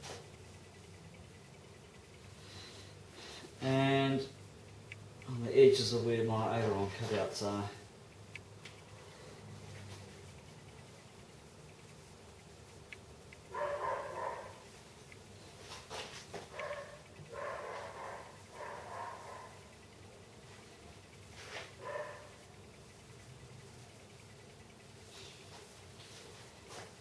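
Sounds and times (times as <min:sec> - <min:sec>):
dog barking: 0:13.5 - 0:14.6, 0:16.5 - 0:19.6, 0:21.8 - 0:22.4.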